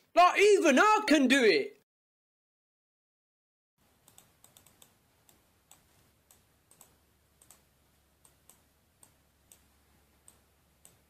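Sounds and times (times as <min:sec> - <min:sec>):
low room hum: 0:03.8 - 0:11.0
computer mouse clicking: 0:04.0 - 0:11.0.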